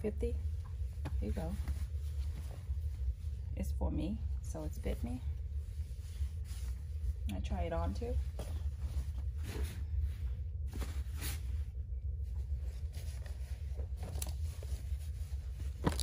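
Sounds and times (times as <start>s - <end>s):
steady low hum: 0.0s - 16.0s
cloth rustling: 0.5s - 3.6s, 4.9s - 7.2s, 8.0s - 16.0s.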